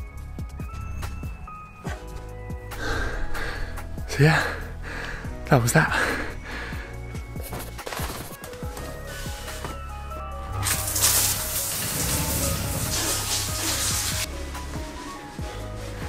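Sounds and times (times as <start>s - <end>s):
shower water hissing: 10.6s - 16.0s.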